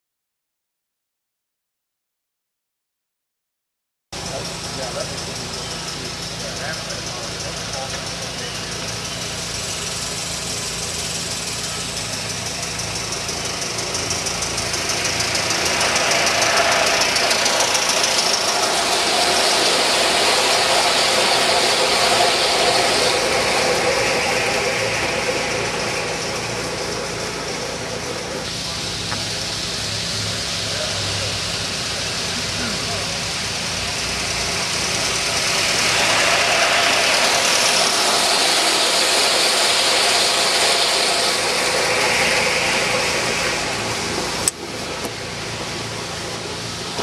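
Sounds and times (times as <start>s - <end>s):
model steam locomotive passing: 4.2s - 47.0s.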